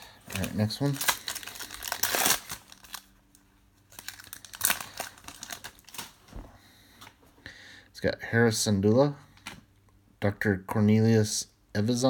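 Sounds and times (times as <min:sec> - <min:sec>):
wrapper crinkling and rustling: 0:00.0 - 0:06.4
foil wrapper tearing: 0:00.3 - 0:03.1, 0:03.8 - 0:06.2.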